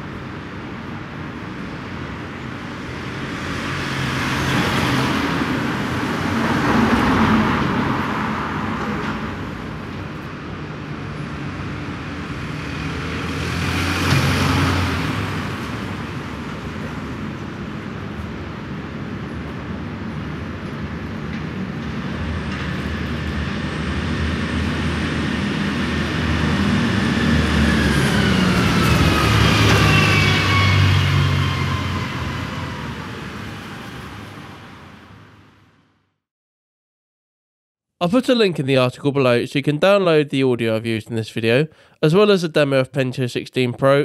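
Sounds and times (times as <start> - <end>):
vehicle passing: 12.2 - 17.3, 24.7 - 35.3.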